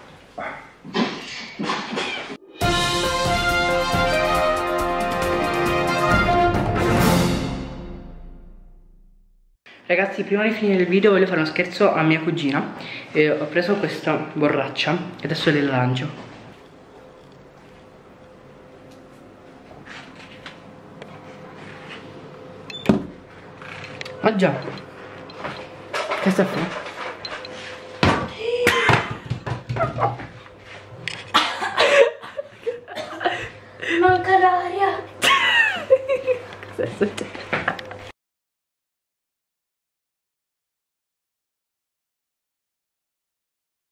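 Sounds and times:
music: 2.4s - 9.2s.

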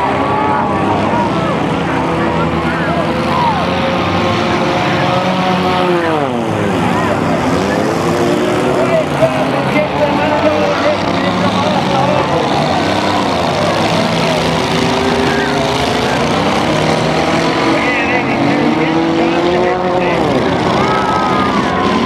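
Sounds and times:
car engines revving: 0.0s - 22.0s.

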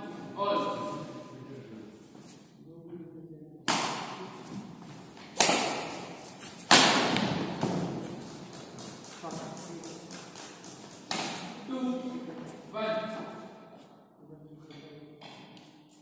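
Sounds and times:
racquet hitting shuttlecock: 3.7s - 9.2s, 9.8s - 11.6s.

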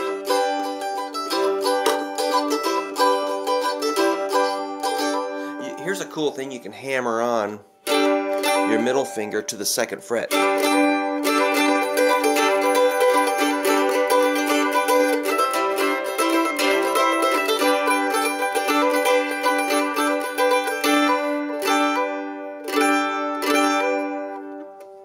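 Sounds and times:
mandolin strumming: 0.0s - 25.0s.

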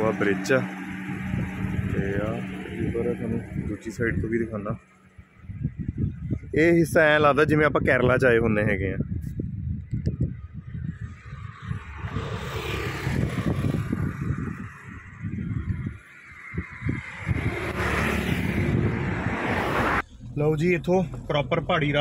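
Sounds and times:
wind rushing over microphone: 0.0s - 20.0s
vehicle road noise: 0.0s - 22.0s.

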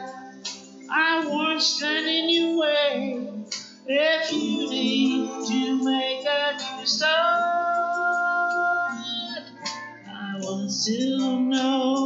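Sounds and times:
backing music: 0.0s - 12.0s
woman singing pop ballad: 0.0s - 12.0s.

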